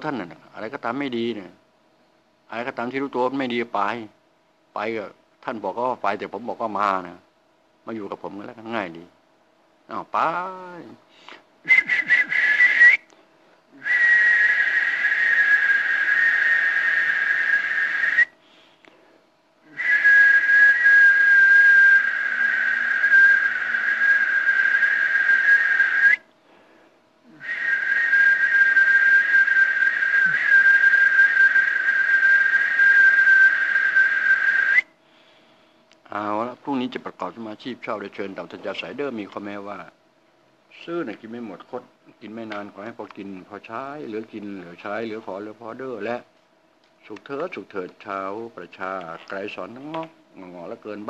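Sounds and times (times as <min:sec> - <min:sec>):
man whistling high notes: 0:11.7 - 0:13.1, 0:13.8 - 0:18.4, 0:19.7 - 0:26.2, 0:27.3 - 0:34.9.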